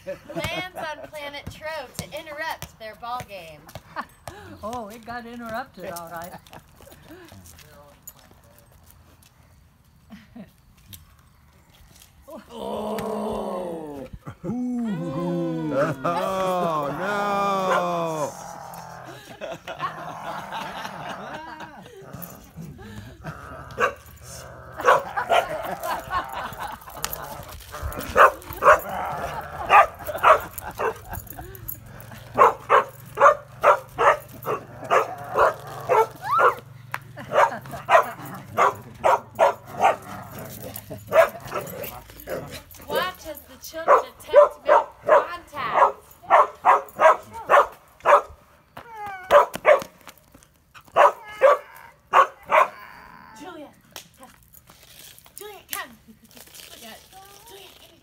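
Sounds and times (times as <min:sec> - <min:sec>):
dog barking: 0:23.8 - 0:24.0, 0:24.8 - 0:25.6, 0:28.2 - 0:28.9, 0:29.6 - 0:31.1, 0:32.4 - 0:36.6, 0:37.3 - 0:40.2, 0:41.1 - 0:41.8, 0:43.9 - 0:48.4, 0:49.3 - 0:49.9, 0:51.0 - 0:52.8.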